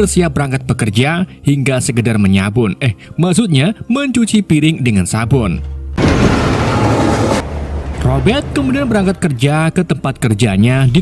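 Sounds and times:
low rumble: 0:06.0 - 0:09.5
train rushing past: 0:06.0 - 0:10.0.

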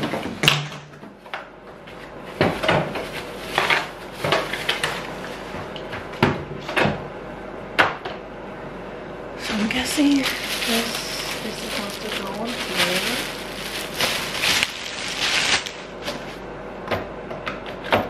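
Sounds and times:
plastic bag rustling: 0:02.5 - 0:05.6, 0:09.4 - 0:16.4.

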